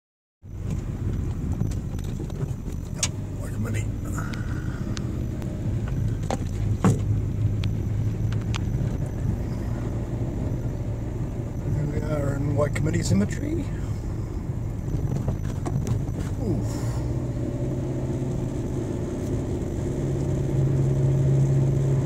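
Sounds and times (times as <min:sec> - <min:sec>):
engine and tyre rumble: 0:00.4 - 0:22.0
sharp clicks and knocks: 0:05.8 - 0:09.2.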